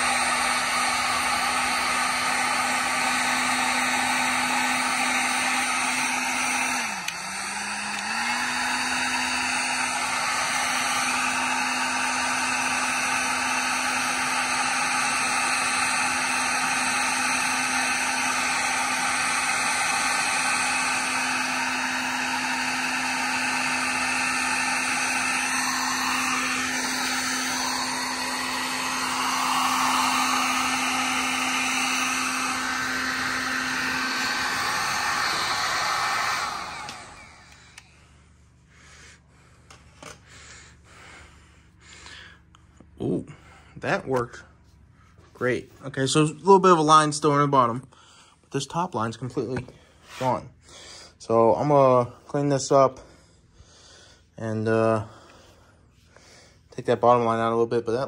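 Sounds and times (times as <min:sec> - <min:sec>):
heat gun whooshing hum: 0:00.0 - 0:47.8, 0:48.4 - 0:58.0.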